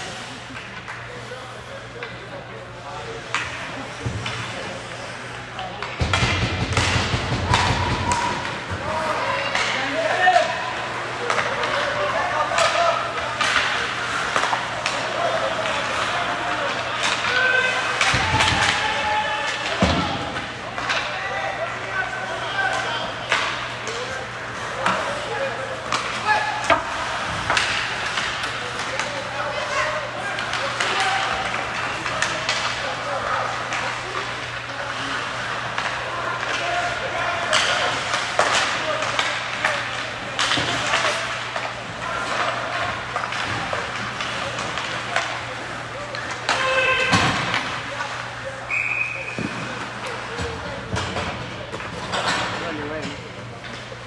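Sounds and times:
hockey sticks clacking on puck: 0:01.8 - 0:54.0
players and spectators shouting: 0:07.4 - 0:27.2, 0:28.7 - 0:44.1, 0:44.9 - 0:48.6.

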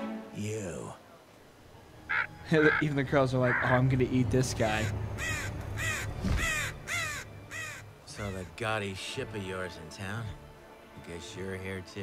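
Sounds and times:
crow cawing: 0:02.1 - 0:02.9, 0:04.8 - 0:08.5.

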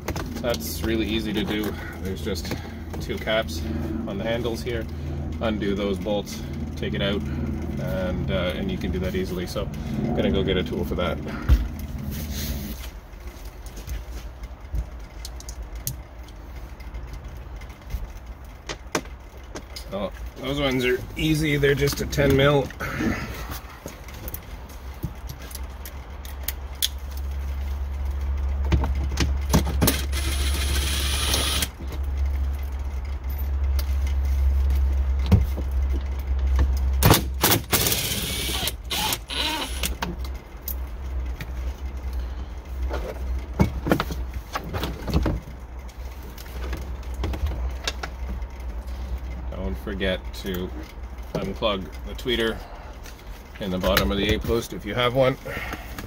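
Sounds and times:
steady low hum: 0:00.0 - 0:56.0
cordless drill running: 0:29.9 - 0:31.8, 0:37.7 - 0:39.9.

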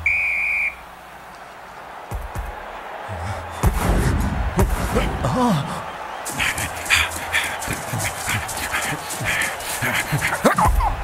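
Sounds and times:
heavy panting breaths: 0:02.9 - 0:04.3, 0:05.0 - 0:11.0.

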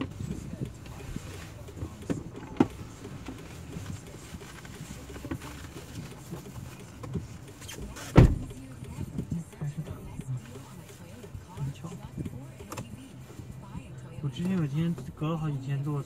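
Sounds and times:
low steady rumble: 0:00.0 - 0:16.0
car door shutting: 0:07.0 - 0:08.7.

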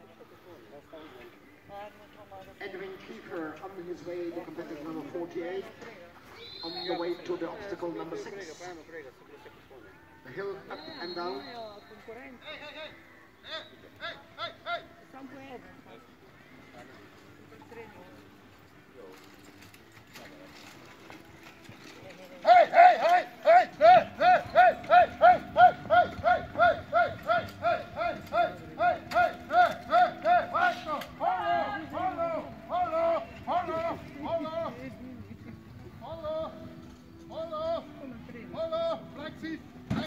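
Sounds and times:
person shouting rhythmic calls: 0:13.4 - 0:15.0, 0:22.4 - 0:34.8
horse hoofbeats: 0:20.3 - 0:30.9.

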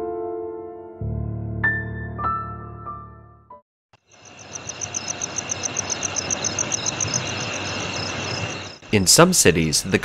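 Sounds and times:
insects chirping: 0:04.0 - 0:10.0.

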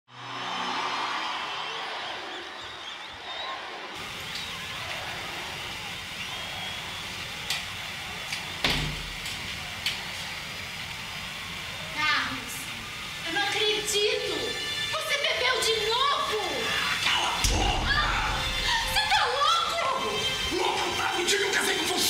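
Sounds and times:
steady hiss: 0:04.0 - 0:22.0
low hum: 0:17.4 - 0:19.6.

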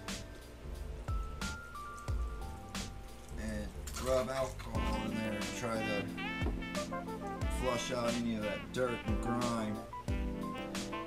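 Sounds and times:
background music: 0:00.0 - 0:11.0
liquid pouring and dripping: 0:01.0 - 0:05.4.

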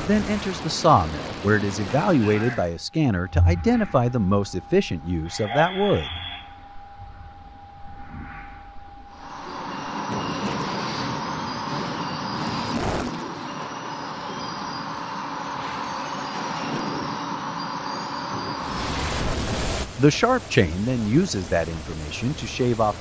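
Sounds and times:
quiet steady hum: 0:00.0 - 0:11.8.

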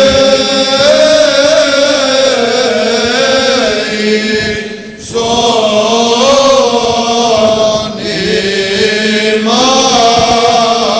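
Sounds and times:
low vocal drone: 0:00.0 - 0:10.9
men chanting melody: 0:00.0 - 0:10.9.

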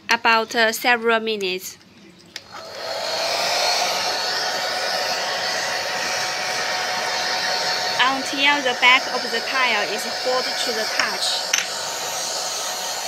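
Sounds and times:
hair dryer blowing whir: 0:02.5 - 0:13.0.

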